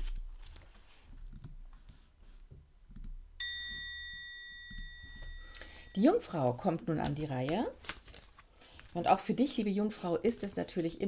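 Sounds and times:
high bell-like chime: 3.4 - 6.0.

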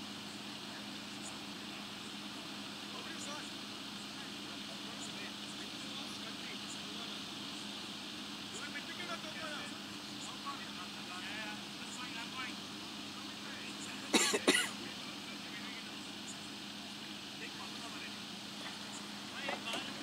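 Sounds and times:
steady background hum: 0.0 - 20.0
players calling faintly: 0.6 - 20.0.

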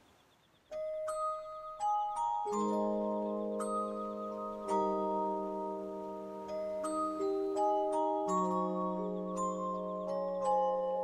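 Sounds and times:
music box playing: 0.7 - 11.0.

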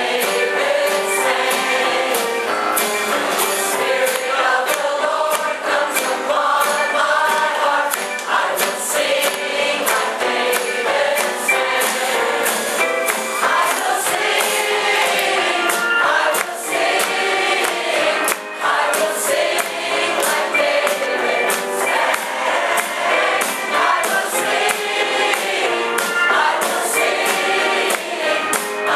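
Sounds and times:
choir singing gospel song: 0.0 - 28.9
percussion beat: 0.0 - 28.9.

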